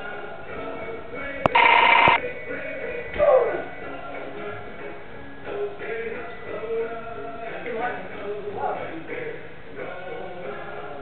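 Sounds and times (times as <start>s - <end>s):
electronic ringing tone: 1.5s - 2.2s.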